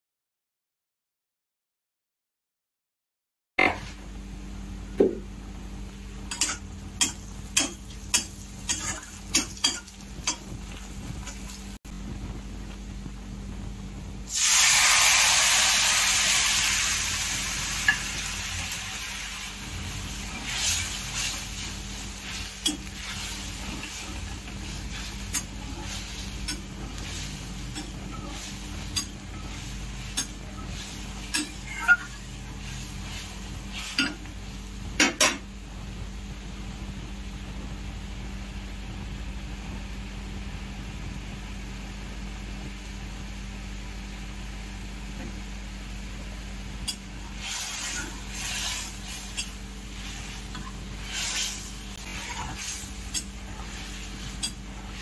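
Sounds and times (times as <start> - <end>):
food sizzling in hot oil: 6.2 - 12.4, 14.2 - 36.0, 46.0 - 55.0
metal spatula scraping a pan: 6.3 - 11.6, 19.9 - 34.3, 46.9 - 55.0.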